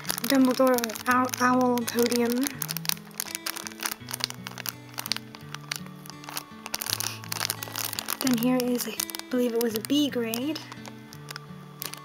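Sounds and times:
plastic sleeve crinkling: 0:00.0 - 0:12.0
soft held chords music: 0:00.0 - 0:12.0.

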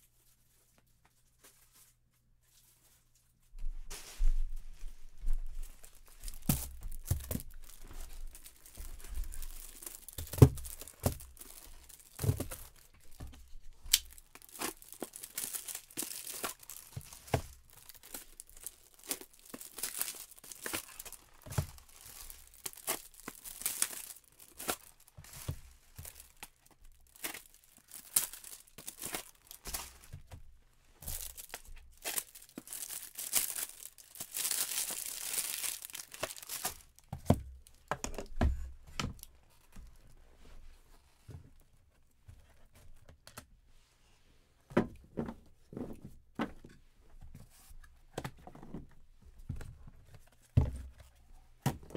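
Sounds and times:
packaging wrap crinkling and tearing: 0:05.5 - 0:30.3, 0:31.0 - 0:37.9.

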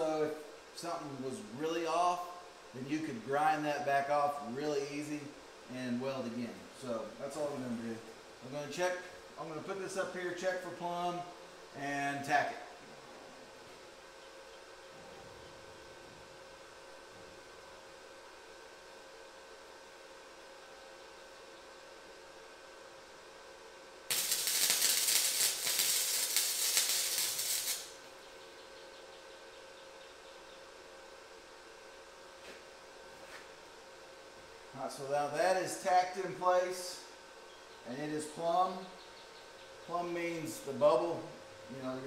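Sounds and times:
faint steady hum: 0:00.0 - 0:42.0
crackling welding arc: 0:24.0 - 0:28.2.

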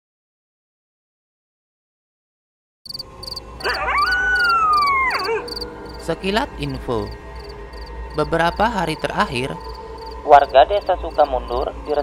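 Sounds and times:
crickets chirping: 0:02.9 - 0:12.0
low hum: 0:02.9 - 0:12.0
dog howling: 0:03.6 - 0:06.0.

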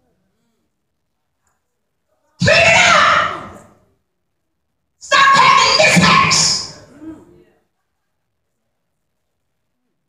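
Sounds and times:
woman shouting through a microphone: 0:02.4 - 0:03.7, 0:05.0 - 0:06.9.

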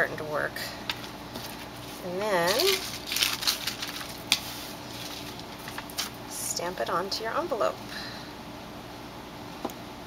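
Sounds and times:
paper rustle: 0:00.9 - 0:06.2.

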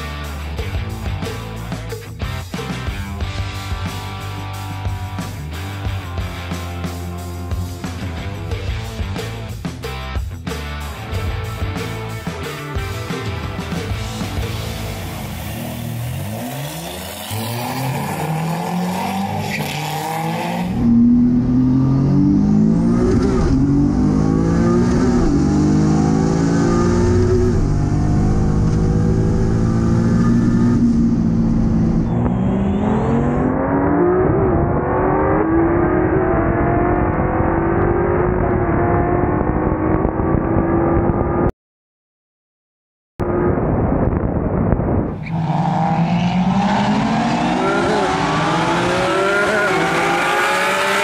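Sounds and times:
car engine revving and accelerating: 0:14.8 - 0:41.5, 0:45.2 - 0:51.0.

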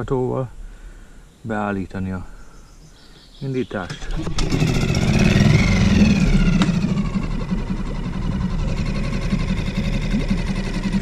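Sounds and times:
outboard motor starting and running: 0:03.8 - 0:11.0.

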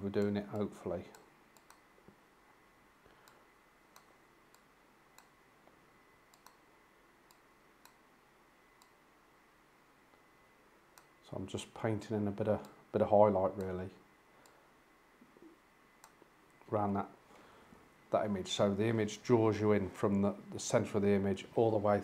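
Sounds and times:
faint steady tone: 0:00.0 - 0:22.0
faint computer mouse clicks: 0:00.2 - 0:01.8, 0:06.3 - 0:06.6, 0:16.0 - 0:16.3.

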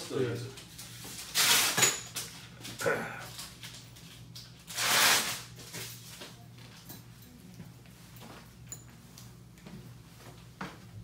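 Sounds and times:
man clearing his throat: 0:02.8 - 0:03.3.

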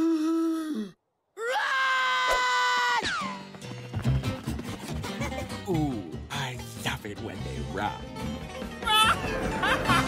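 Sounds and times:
cartoon screams: 0:01.4 - 0:03.3.

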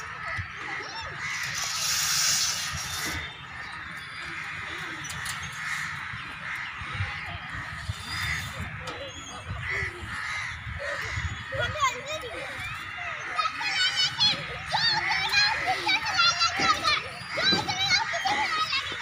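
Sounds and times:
bird cawing: 0:00.0 - 0:19.0
children's voices at play: 0:00.0 - 0:19.0.

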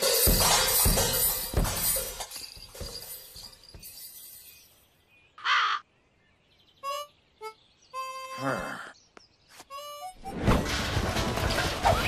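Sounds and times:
clatter with low thumps: 0:10.5 - 0:12.0.

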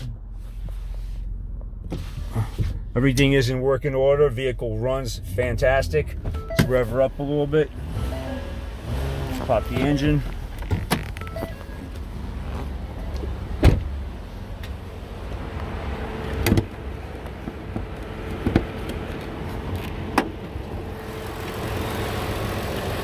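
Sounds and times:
car engine idling quietly: 0:00.0 - 0:23.0
hood clunks opening: 0:09.2 - 0:14.0, 0:16.3 - 0:20.6.

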